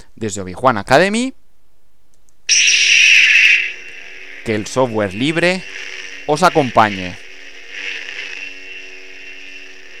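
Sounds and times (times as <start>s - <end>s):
steady background hum and hiss: 0.0s - 10.0s.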